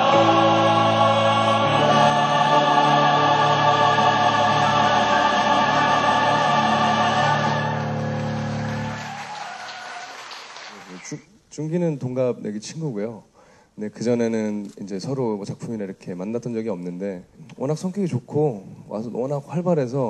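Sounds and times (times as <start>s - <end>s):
mixed chorus singing held notes: 0.0s - 9.9s.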